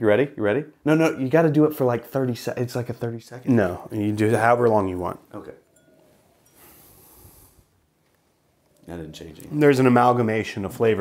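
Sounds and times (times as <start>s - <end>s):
long nasal sniff: 6.5s - 7.8s.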